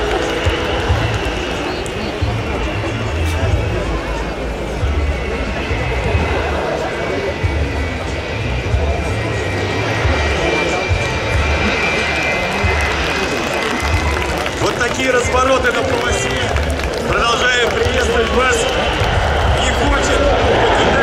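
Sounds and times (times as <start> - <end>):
crowd voices: 0.0 - 21.0
jet engines whining: 0.0 - 21.0.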